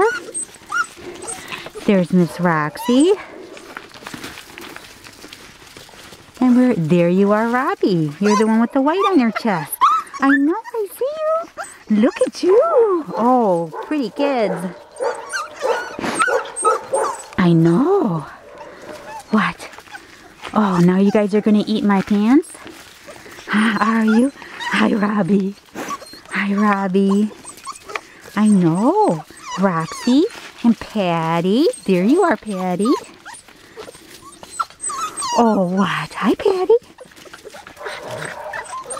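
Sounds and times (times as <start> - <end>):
puppies yipping and whining: 0.0 - 38.9.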